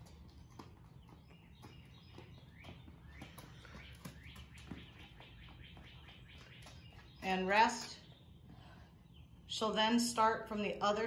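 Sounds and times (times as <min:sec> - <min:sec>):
faint bird chirping: 0:00.0 - 0:09.6.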